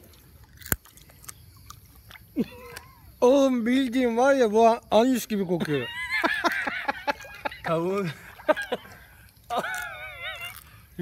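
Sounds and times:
sharp crunch: 0:00.0 - 0:02.9
wet chewing: 0:00.0 - 0:03.2, 0:06.4 - 0:11.0.

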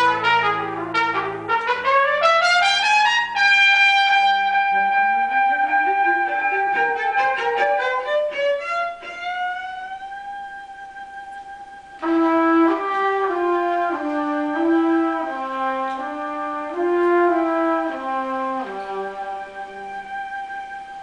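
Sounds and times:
trumpet playing: 0:00.0 - 0:21.0
bowed cello: 0:04.2 - 0:21.0.

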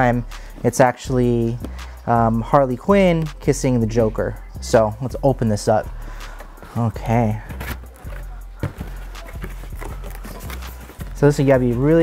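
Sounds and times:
background music: 0:00.0 - 0:12.0
cardboard packaging knocks and scrapes: 0:07.5 - 0:11.2.

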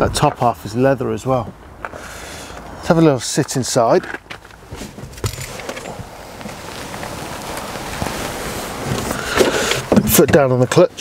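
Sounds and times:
handling rustling and knocks: 0:03.4 - 0:10.8.

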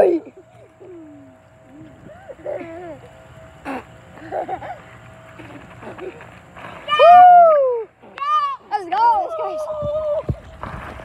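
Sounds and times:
child shouting excitedly: 0:06.9 - 0:10.3.

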